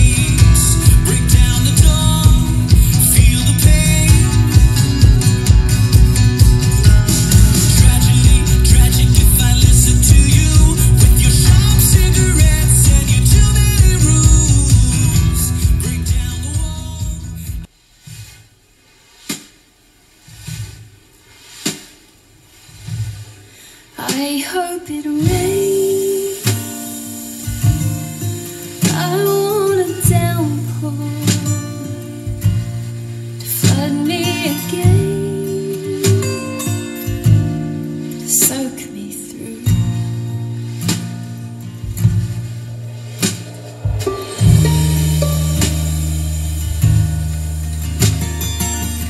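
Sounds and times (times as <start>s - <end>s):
strummed guitar chords: 0.0s - 17.7s, 25.2s - 49.0s.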